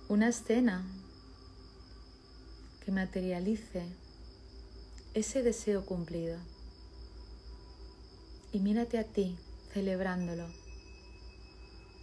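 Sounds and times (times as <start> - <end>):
woman's voice: 0.0 - 1.0, 2.8 - 4.0, 5.0 - 6.5, 8.4 - 10.6
crickets trilling: 0.0 - 12.0
faint low hum: 0.0 - 12.0.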